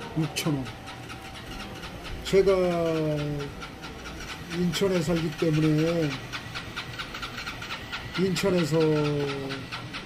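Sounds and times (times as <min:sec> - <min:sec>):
faint rapid ticking: 0:00.0 - 0:10.0.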